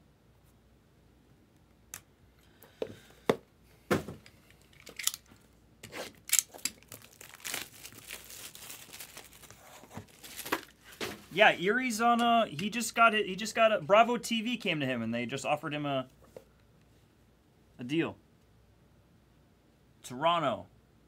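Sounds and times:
plastic wrap crinkling and tearing: 6.0s - 11.2s.

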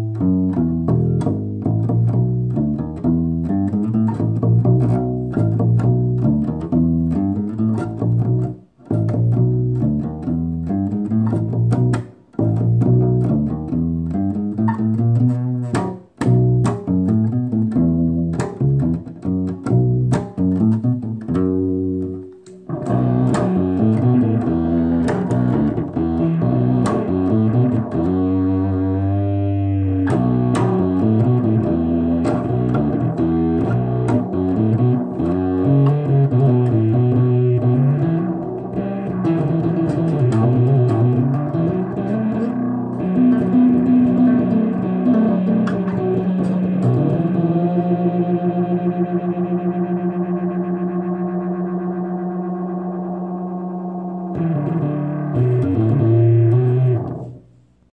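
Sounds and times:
acoustic bass guitar solo: 0.0s - 57.9s.

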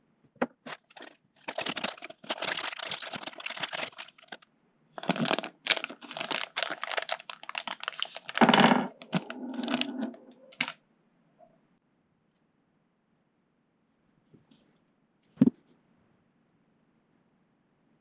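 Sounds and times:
plastic bag crinkling: 0.6s - 4.4s, 5.0s - 10.8s.

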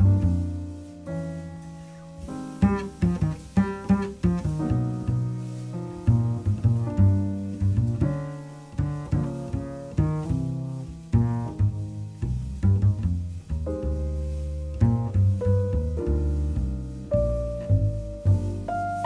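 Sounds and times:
double bass plucked notes: 0.0s - 19.0s.

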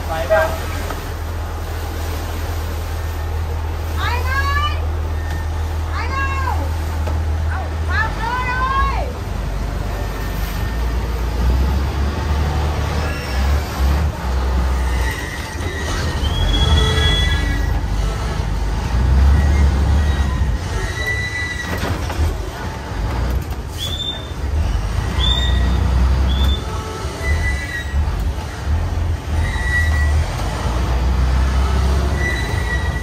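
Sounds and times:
boat engine rumbling: 0.0s - 33.0s.

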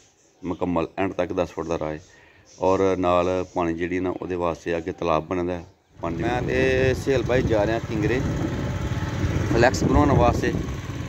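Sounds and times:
motorcycle engine and road noise: 6.0s - 11.0s.

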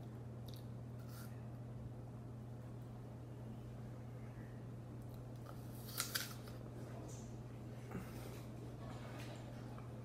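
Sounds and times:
teeth crunching apple: 5.0s - 6.6s.

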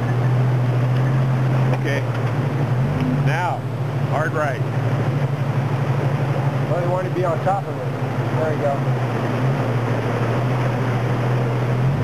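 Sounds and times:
buggy engine running: 0.0s - 12.0s.

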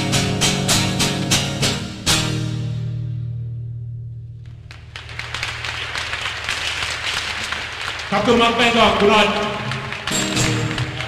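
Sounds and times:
audience applause: 4.7s - 11.0s.

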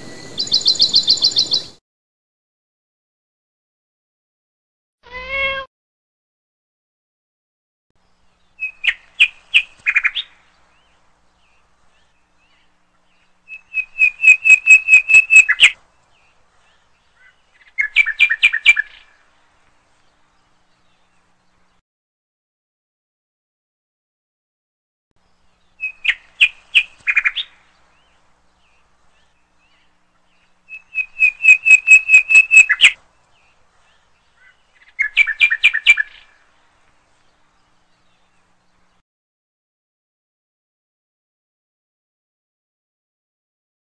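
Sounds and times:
bird chirping: 0.0s - 1.8s, 8.0s - 21.8s, 25.2s - 39.0s
songbird singing: 0.0s - 1.8s, 8.0s - 21.8s, 25.2s - 39.0s.

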